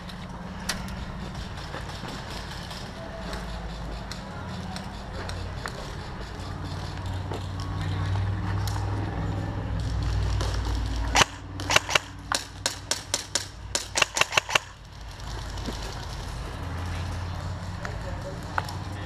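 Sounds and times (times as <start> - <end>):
airsoft gun shots: 11.1 - 14.8.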